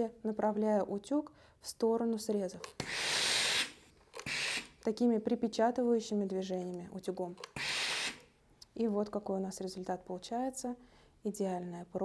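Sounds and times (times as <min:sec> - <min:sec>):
steam iron hissing: 0:02.8 - 0:04.8, 0:07.5 - 0:08.2.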